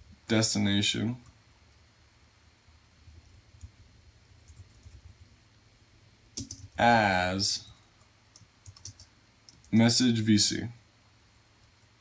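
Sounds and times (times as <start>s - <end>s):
low steady hum: 0.0s - 12.0s
keyboard key clicks: 6.4s - 6.8s.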